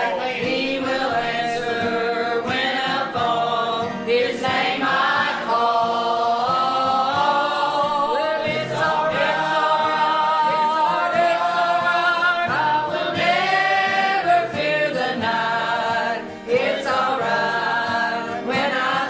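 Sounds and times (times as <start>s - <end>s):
church choir singing: 0.0s - 19.0s.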